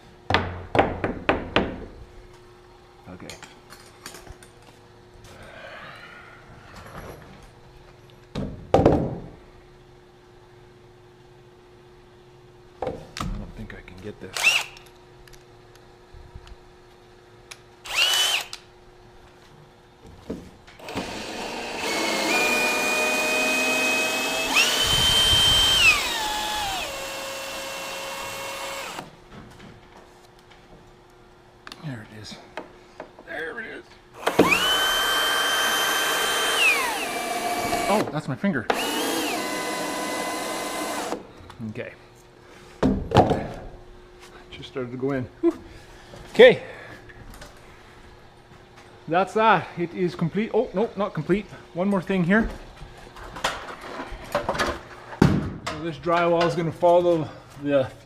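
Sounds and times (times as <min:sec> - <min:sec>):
cordless drill driving a screw: 0:14.4 - 0:14.8, 0:17.9 - 0:18.6, 0:20.8 - 0:29.1, 0:34.2 - 0:38.1, 0:38.7 - 0:41.2.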